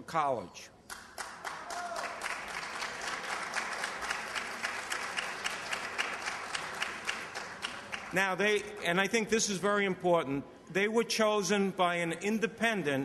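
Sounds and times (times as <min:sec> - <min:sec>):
audience applauding: 0:00.9 - 0:08.3.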